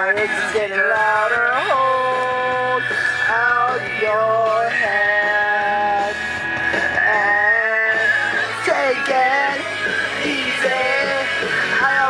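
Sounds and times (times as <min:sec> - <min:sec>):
pop-rock song with wordless vocals: 0:00.0 - 0:12.0.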